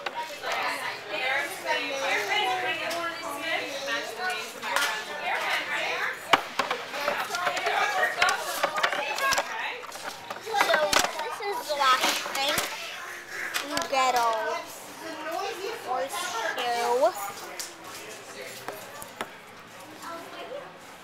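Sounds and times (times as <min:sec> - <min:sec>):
children talking and playing: 0:00.0 - 0:21.0.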